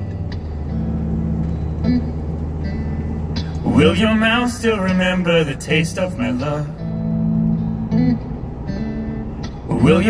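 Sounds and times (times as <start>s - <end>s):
car engine and road hum: 0.0s - 10.0s.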